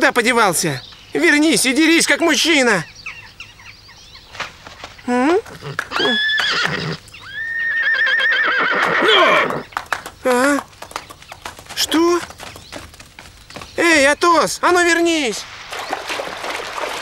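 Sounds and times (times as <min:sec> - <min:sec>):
horse neighing: 0:05.4 - 0:09.7.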